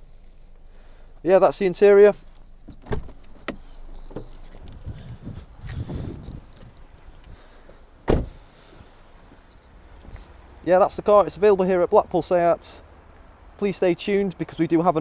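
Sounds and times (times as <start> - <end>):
knocks clicks and rustling: 2.5 - 5.2
car door thud: 2.7 - 4.3, 8.0 - 8.4.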